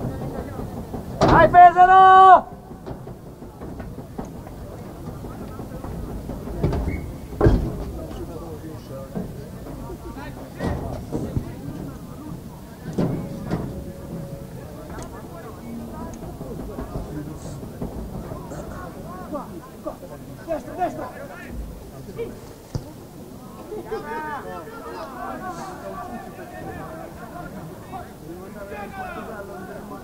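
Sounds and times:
open-air background noise: 0.0s - 30.0s.

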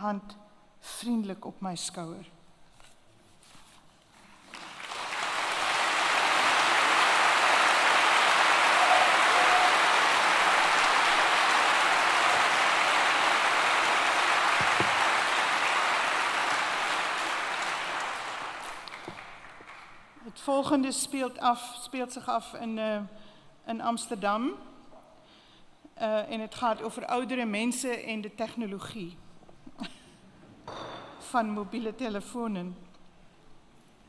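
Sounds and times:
audience applauding: 4.4s - 20.2s.

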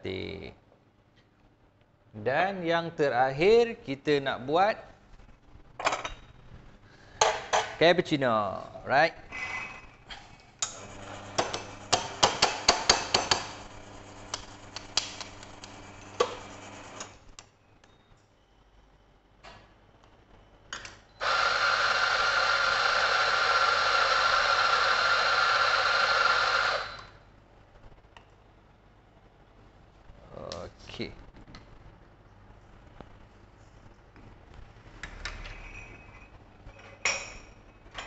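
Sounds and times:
espresso machine motor hum: 10.7s - 17.2s, 21.2s - 27.1s.

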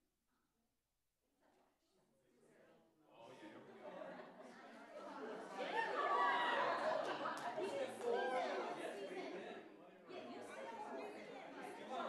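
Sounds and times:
people chattering: 3.2s - 12.0s.

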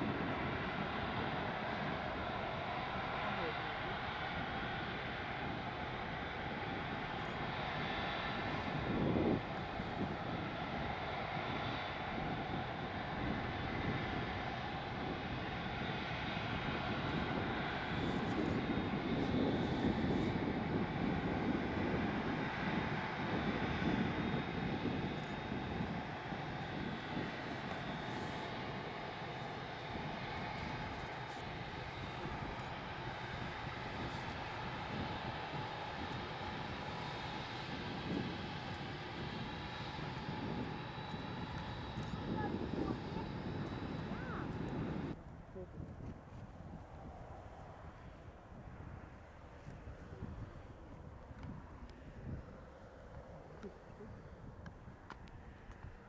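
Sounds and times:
jet engines whining: 0.0s - 45.7s.

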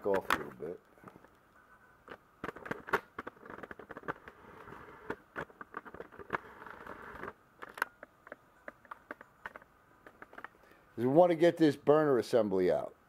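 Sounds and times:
camera handling rustling: 2.1s - 10.6s.

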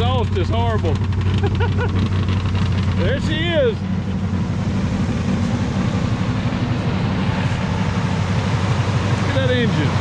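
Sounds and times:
rough car engine running: 0.0s - 10.0s.

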